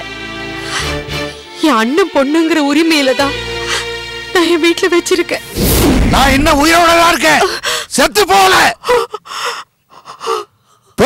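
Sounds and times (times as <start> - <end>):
woman gasping: 7.4 - 7.9.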